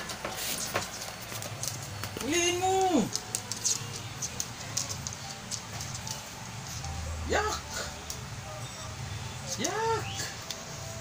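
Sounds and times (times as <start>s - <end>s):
dog claws tapping on wooden floor: 0.0s - 6.2s.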